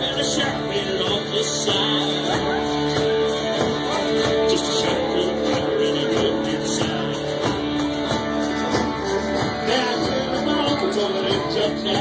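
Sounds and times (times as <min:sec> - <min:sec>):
electric and acoustic guitars: 0:00.0 - 0:12.0
steady drum beat: 0:00.0 - 0:12.0.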